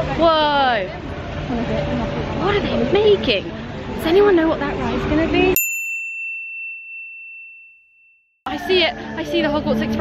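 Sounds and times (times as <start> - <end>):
high bell-like ding: 5.6 - 8.3.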